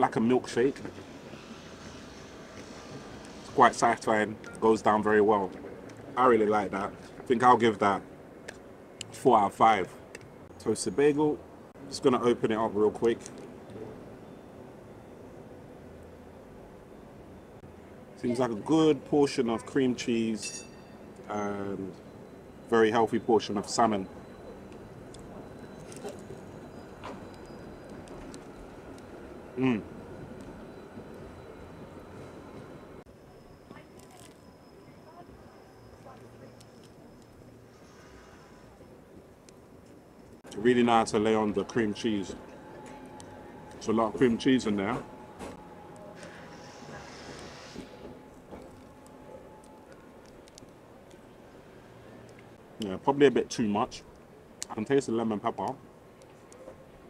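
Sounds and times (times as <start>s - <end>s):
urban street hum: 0.0s - 57.0s.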